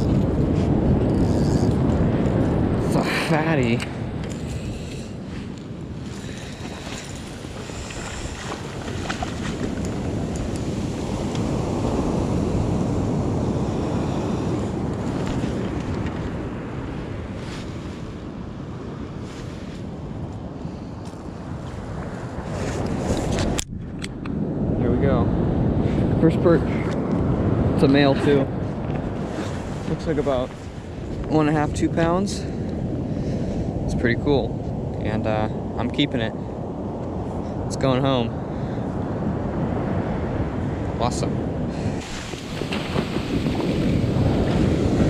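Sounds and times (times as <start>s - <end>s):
surf washing up beach: 0.0s - 23.6s, 24.4s - 45.0s
wind rumbling on microphone: 0.0s - 45.0s.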